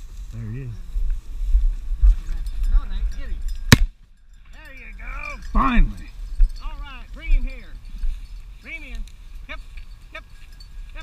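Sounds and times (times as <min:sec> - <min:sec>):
wind rumbling on microphone: 0:00.0 - 0:11.0
shotgun shot: 0:03.7 - 0:03.9.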